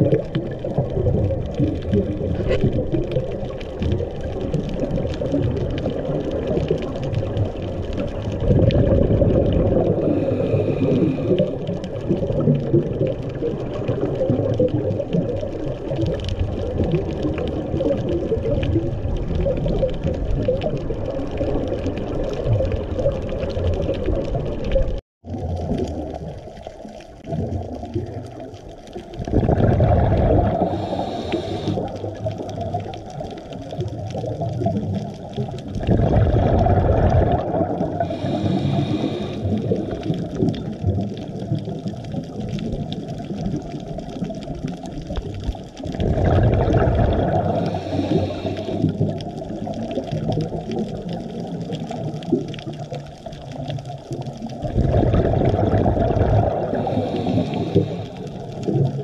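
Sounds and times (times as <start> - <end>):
exhaled bubbles rushing: 0.0 - 59.0
underwater background noise: 0.0 - 59.0.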